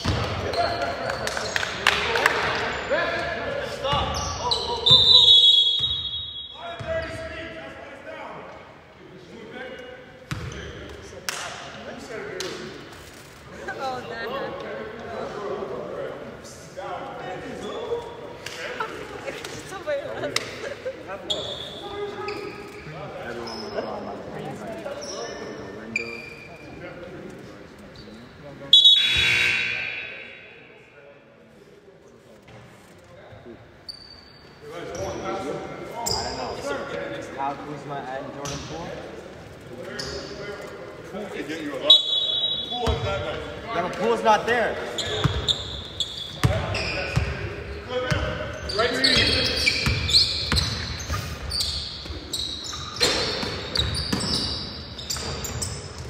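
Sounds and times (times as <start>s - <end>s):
sneaker squeaks: 0.0s - 1.8s, 2.4s - 7.5s, 10.3s - 11.1s, 21.1s - 26.8s, 27.9s - 30.5s, 33.8s - 35.2s, 36.0s - 36.7s, 39.8s - 40.7s, 41.8s - 43.6s, 44.8s - 56.0s
voices echoing in hall: 0.0s - 56.0s
loud shrill blast: 28.8s - 30.4s.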